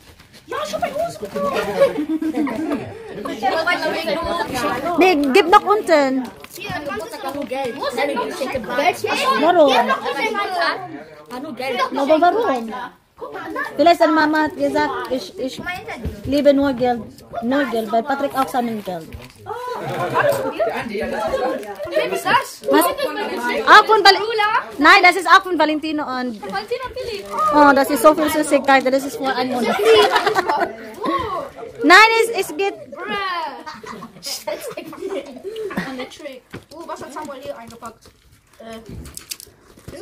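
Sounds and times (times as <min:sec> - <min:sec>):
indistinct chatter of voices: 0:00.0 - 0:40.0
gift bag rustling: 0:17.7 - 0:20.4, 0:24.9 - 0:30.5.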